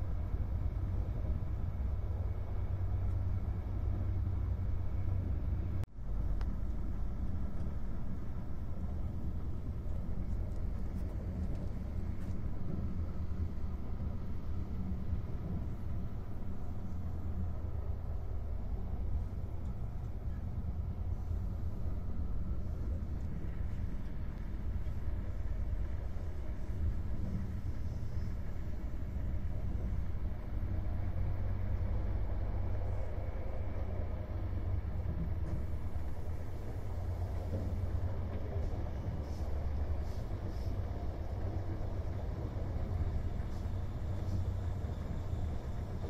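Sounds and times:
train wheels rumbling: 0.0s - 46.0s.

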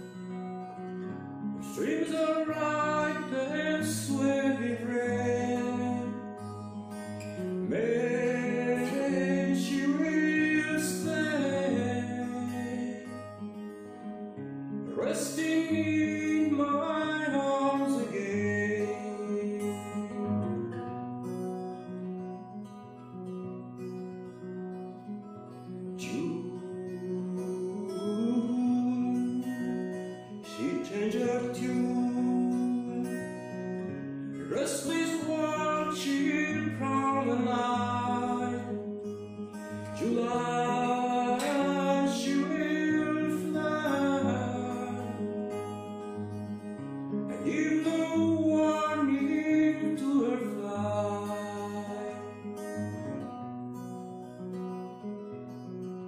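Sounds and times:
acoustic guitar playing: 0.0s - 56.0s.

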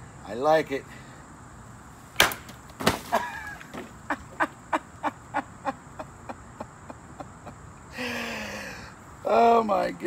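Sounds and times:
man laughing: 3.1s - 8.4s.

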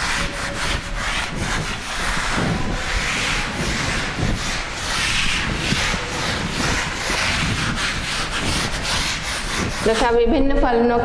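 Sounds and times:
dry rubbing strokes: 0.0s - 10.2s.

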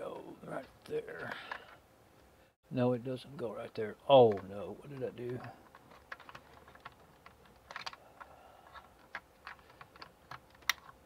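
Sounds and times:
light clicks and taps on computer equipment: 3.3s - 11.0s.

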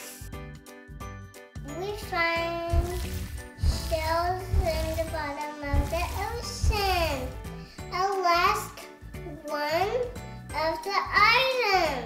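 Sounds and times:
child's voice: 1.6s - 12.0s.

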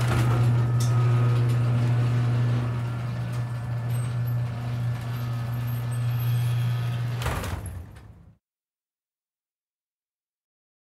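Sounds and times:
motor humming: 0.0s - 7.4s.

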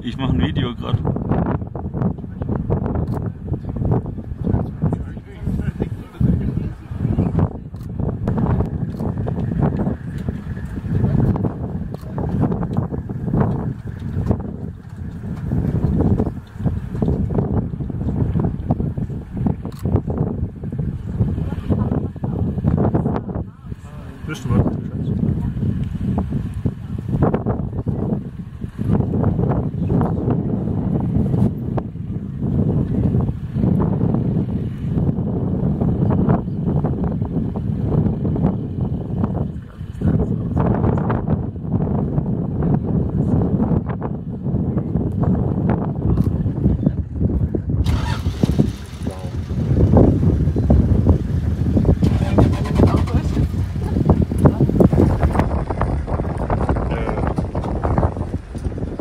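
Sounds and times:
vehicle engines rumbling: 0.0s - 59.0s
people talking quietly: 2.1s - 13.0s, 20.9s - 31.0s, 38.9s - 41.2s, 45.9s - 49.8s, 52.0s - 55.3s.

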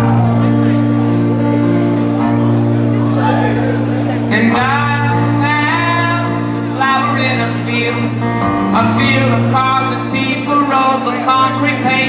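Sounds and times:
acoustic folk band playing: 0.0s - 12.0s
man singing: 4.3s - 12.0s.

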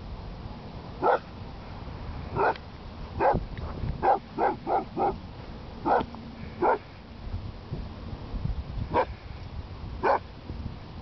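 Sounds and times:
dog barking: 1.0s - 1.3s, 2.4s - 2.6s, 3.2s - 3.4s, 4.0s - 5.2s, 5.8s - 6.8s, 10.0s - 10.3s.

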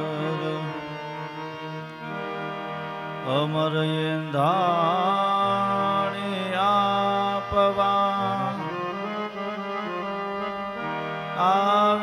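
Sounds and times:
person singing ornamented line: 0.0s - 2.0s.

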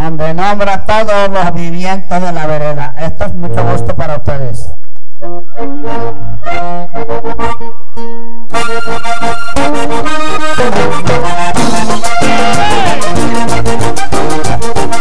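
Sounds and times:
accordion melody: 5.2s - 15.0s
band playing with percussion: 8.5s - 15.0s.

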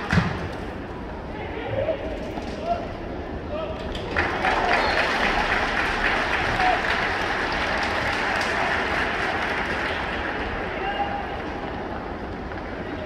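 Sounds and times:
voices in the stands: 0.0s - 13.0s
stadium crowd clapping: 3.8s - 13.0s.

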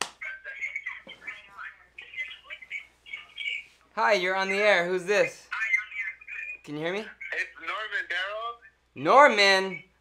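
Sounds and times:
person talking over phone line: 0.2s - 9.9s.

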